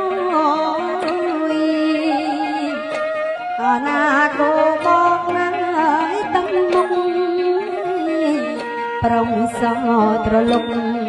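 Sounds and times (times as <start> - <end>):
small instrumental ensemble: 0.0 - 11.0
woman singing ornamented melody: 0.0 - 11.0.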